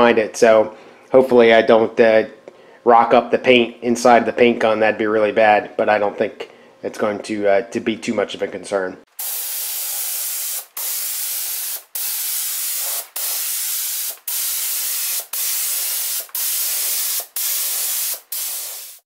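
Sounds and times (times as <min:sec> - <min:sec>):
spray gun hissing: 0:09.2 - 0:19.0.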